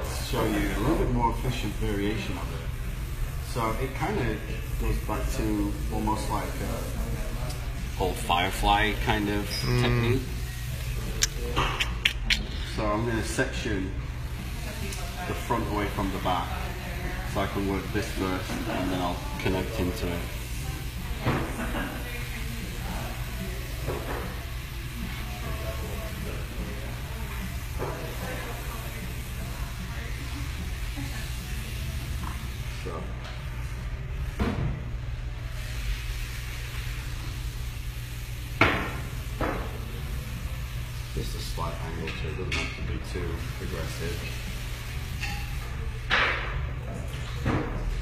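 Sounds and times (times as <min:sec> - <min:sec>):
steady low hum: 0:01.2 - 0:15.4.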